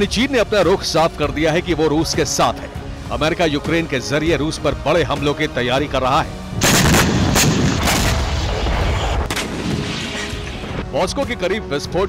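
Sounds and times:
gunshot cracks: 6.6s - 10.5s
explosion blast: 6.6s - 10.8s.

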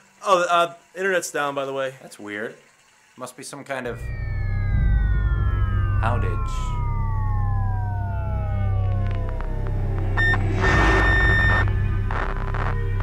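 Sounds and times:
burst of static noise: 3.9s - 13.0s
falling electronic whine: 3.9s - 13.0s
steady low drone: 3.9s - 13.0s.

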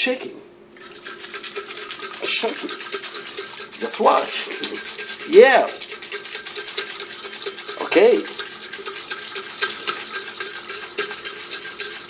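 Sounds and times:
water sloshing in shaken mug: 0.8s - 12.0s.

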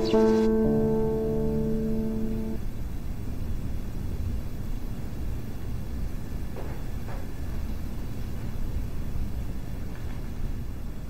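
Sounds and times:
background music chord: 0.0s - 2.7s.

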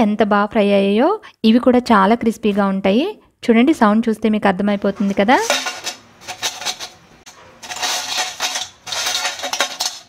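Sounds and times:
potato chips rustling in steel bowl: 4.8s - 10.0s.

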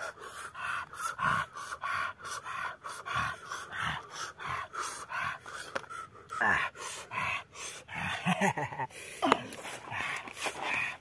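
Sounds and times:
man laughing breathlessly: 6.4s - 10.1s.

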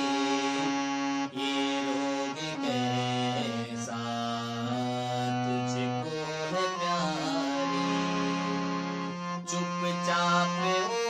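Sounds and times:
harmonium playing: 0.0s - 11.0s.

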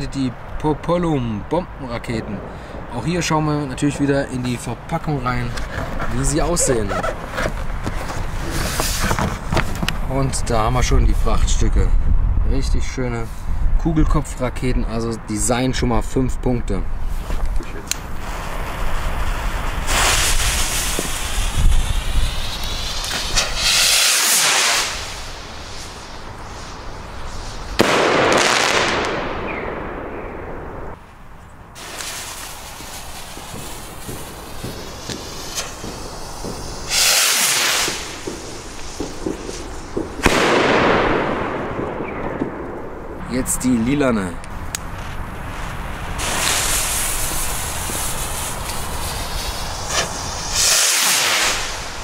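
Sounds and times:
rockets whooshing: 2.0s - 12.5s, 17.0s - 31.0s, 31.7s - 52.0s
firework shell bursts: 18.0s - 30.2s, 31.8s - 43.1s, 46.1s - 52.0s.

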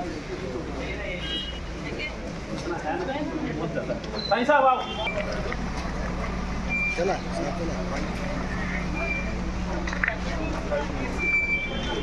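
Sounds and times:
crowd murmur: 0.0s - 12.0s
vehicle engine humming: 0.0s - 12.0s
short high beeps: 8.9s - 9.4s, 11.1s - 12.0s.

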